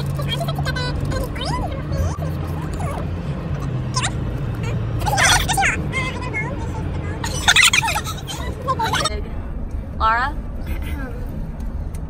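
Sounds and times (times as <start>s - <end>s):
car interior rumble: 0.0s - 12.0s
high-pitched warbling laughter: 5.0s - 5.6s, 7.2s - 9.2s.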